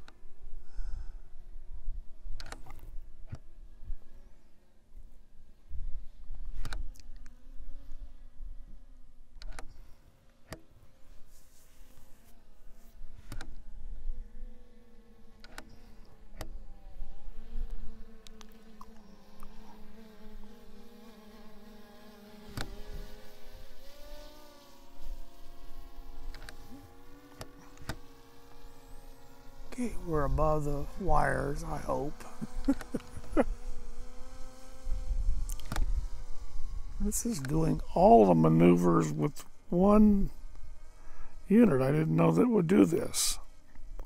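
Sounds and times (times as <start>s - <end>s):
drone propellers buzzing: 0.0s - 44.0s.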